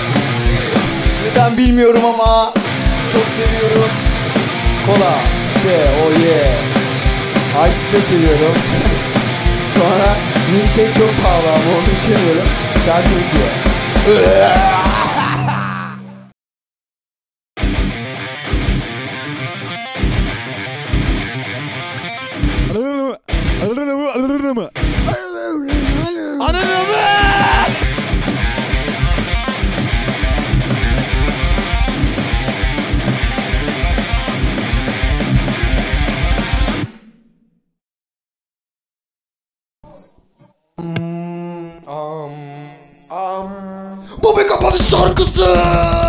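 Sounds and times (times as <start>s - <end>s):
rock song with guitar and drums: 0.0s - 15.3s, 17.6s - 22.7s, 23.3s - 23.6s, 24.8s - 25.1s, 26.6s - 36.9s
person singing wavering notes: 40.8s - 44.1s.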